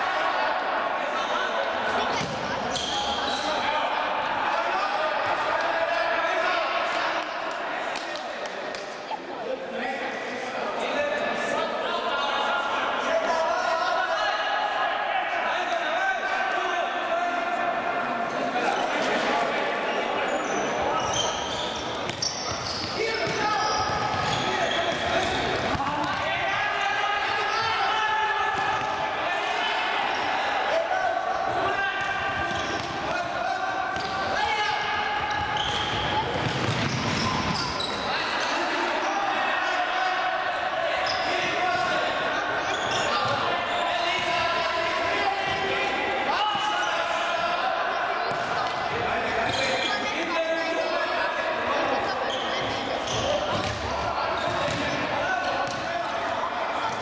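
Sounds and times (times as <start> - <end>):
players shouting: 20.4 - 52.4.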